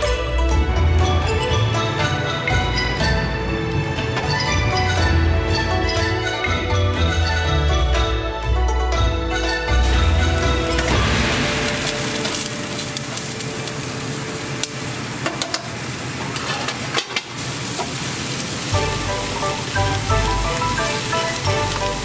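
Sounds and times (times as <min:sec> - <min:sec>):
background music: 0:00.0 - 0:15.0, 0:18.7 - 0:22.0
vegetables sizzling in a pan: 0:09.8 - 0:22.0.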